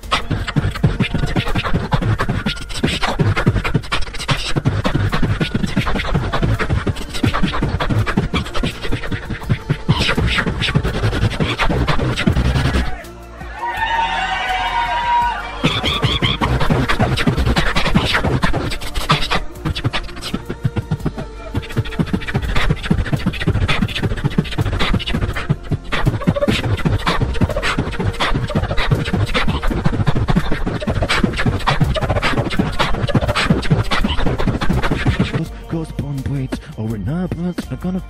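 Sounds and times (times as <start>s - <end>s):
person beatboxing: 0.0s - 13.2s, 15.6s - 38.0s.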